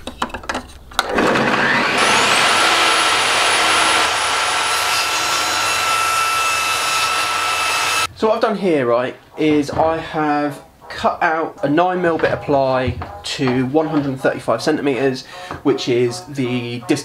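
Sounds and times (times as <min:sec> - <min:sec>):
table saw motor running: 0:01.0 - 0:08.1.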